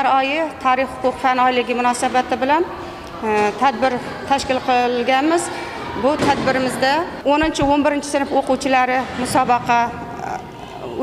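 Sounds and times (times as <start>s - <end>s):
woman speaking: 0.0s - 10.5s.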